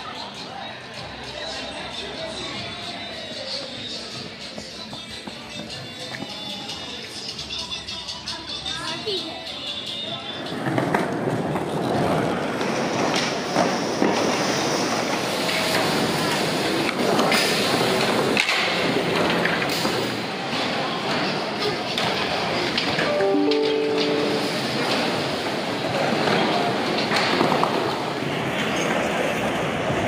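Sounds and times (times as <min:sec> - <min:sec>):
skateboard wheels rolling on concrete: 0:09.2 - 0:22.9, 0:26.6 - 0:30.0
crowd chattering: 0:23.1 - 0:25.6.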